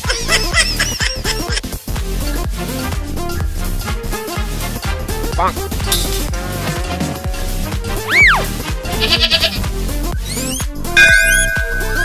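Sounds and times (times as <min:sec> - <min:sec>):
background music: 0:00.0 - 0:12.0
wavering bleat-like call: 0:08.1 - 0:09.6
whistle-like glide: 0:11.0 - 0:12.0.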